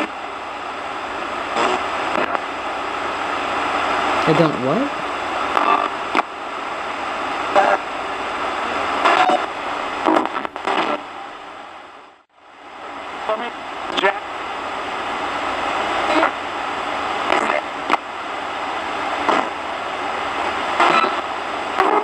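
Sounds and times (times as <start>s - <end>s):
radio static: 0.0s - 11.4s, 13.2s - 22.0s
fragments of broadcast voices: 0.0s - 12.0s, 12.7s - 22.0s.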